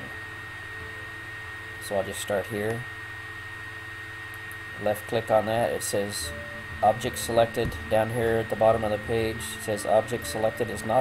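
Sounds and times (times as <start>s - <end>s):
background hum and hiss: 0.0s - 11.0s
high-pitched electrical whine: 0.0s - 11.0s.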